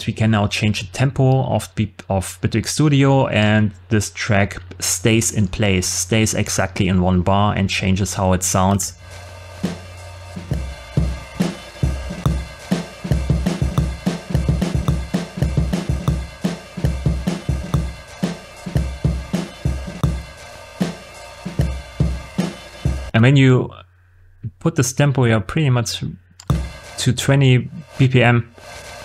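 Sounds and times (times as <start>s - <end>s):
drum loop: 9.0s - 23.2s, 26.4s - 29.0s.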